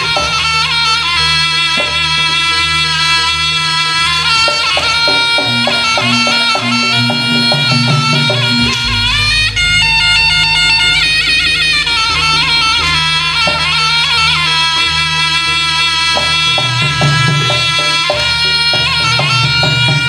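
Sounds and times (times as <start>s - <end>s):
shrill reed wind instrument melody: 0.0s - 20.0s
struck percussion beats: 0.0s - 20.0s
deep low sound: 8.3s - 14.9s.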